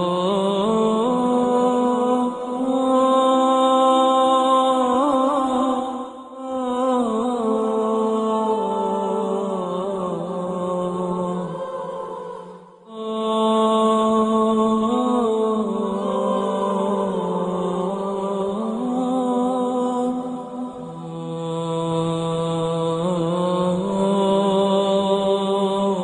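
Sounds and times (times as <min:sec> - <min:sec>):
person singing unaccompanied: 0:00.0 - 0:26.0.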